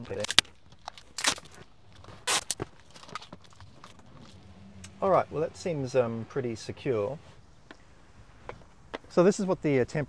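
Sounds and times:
faint low hum: 0:01.6 - 0:10.0.

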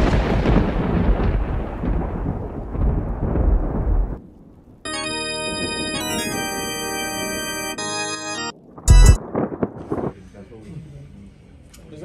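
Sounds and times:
rolling thunder rumble: 0:00.0 - 0:04.8, 0:08.5 - 0:10.2.

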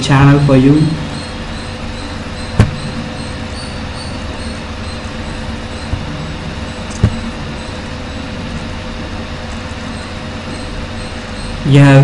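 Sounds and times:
microphone hiss and hum: 0:00.0 - 0:12.0
computer mouse clicks: 0:06.9 - 0:07.2.

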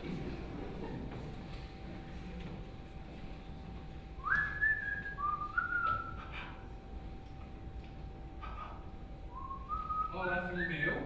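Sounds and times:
long whistled notes: 0:09.3 - 0:11.0.

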